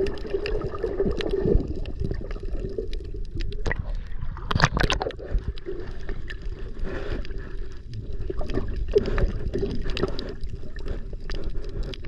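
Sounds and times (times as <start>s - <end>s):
underwater clicks and gurgles: 0.0s - 12.0s
underwater rumble: 0.0s - 12.0s.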